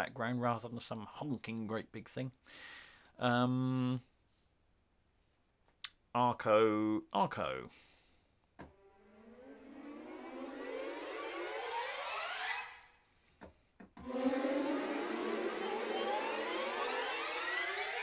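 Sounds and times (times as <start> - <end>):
orchestral string riser: 8.7 - 13.1, 14.0 - 18.0.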